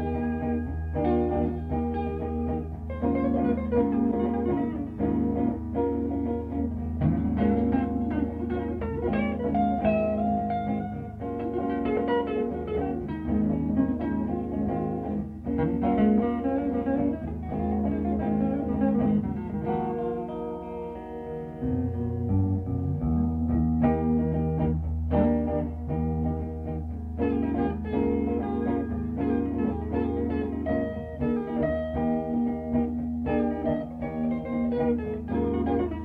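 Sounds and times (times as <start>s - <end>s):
instrumental guitar band music: 0.0s - 36.0s.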